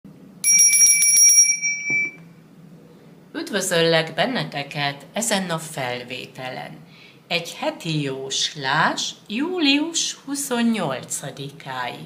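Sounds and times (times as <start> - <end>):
small bell trill: 0.4 - 2.2.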